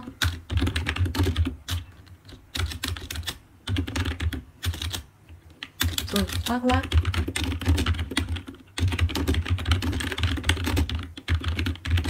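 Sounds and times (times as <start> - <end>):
computer keyboard typing: 0.0 - 12.0.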